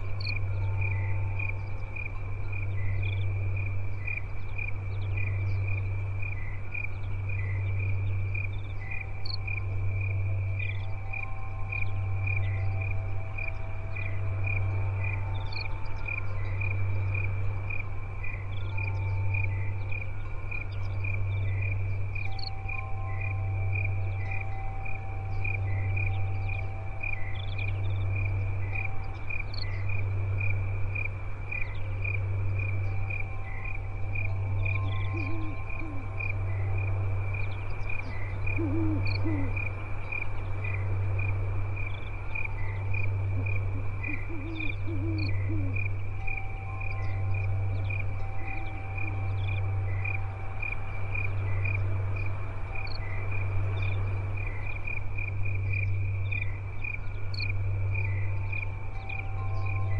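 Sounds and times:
crickets chirping: 0.0s - 59.9s.

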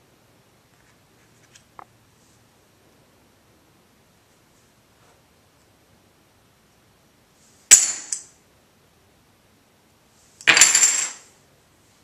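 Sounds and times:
poker chips clattering on table: 7.7s - 8.3s, 10.4s - 11.3s.

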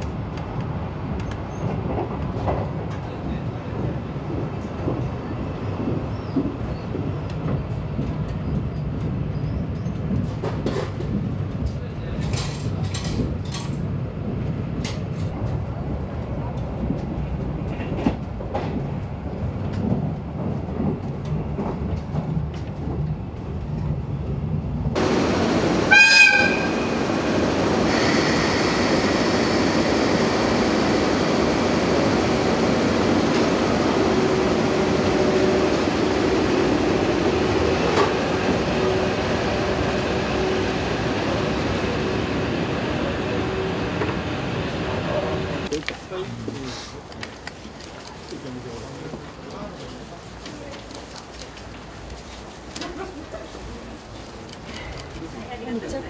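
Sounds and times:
train rumbling: 0.0s - 56.0s
locomotive hum: 22.1s - 45.8s
train horn blast: 25.8s - 27.0s.

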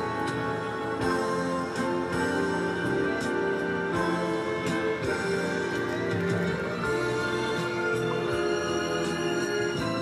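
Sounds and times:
instrumental music on car radio: 0.0s - 10.0s.

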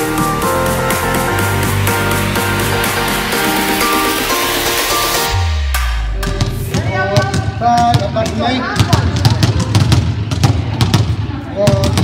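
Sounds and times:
balls bouncing on hall floor: 6.2s - 12.0s.

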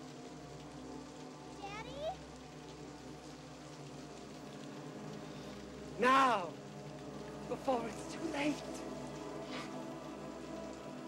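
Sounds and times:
steady hiss: 0.0s - 11.0s
child's voice calling: 1.6s - 2.2s.

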